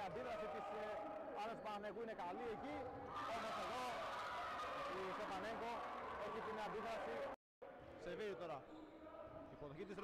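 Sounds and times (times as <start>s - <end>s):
people talking in a sports hall: 0.0s - 10.0s.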